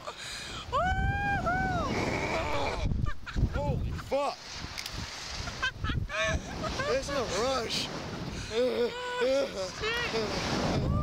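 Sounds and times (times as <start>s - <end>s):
wind buffeting microphone: 0.6s - 8.5s, 9.6s - 11.0s
person screaming: 0.8s - 2.9s.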